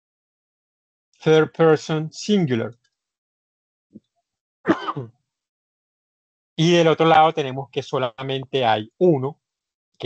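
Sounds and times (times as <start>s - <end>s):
man clearing throat: 4.7s - 5.1s.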